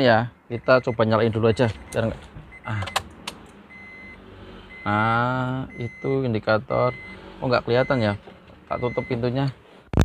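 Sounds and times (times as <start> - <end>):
car warning chime beeping: 0.0 - 9.4.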